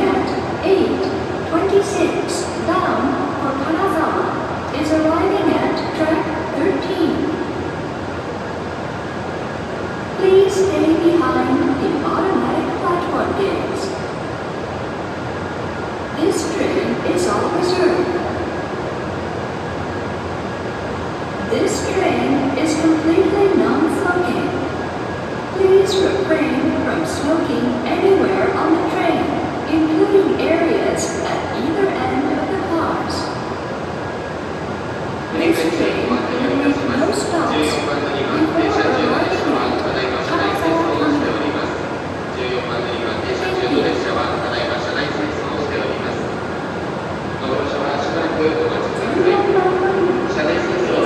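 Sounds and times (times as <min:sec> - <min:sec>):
train rushing into platform: 0:00.0 - 0:51.0.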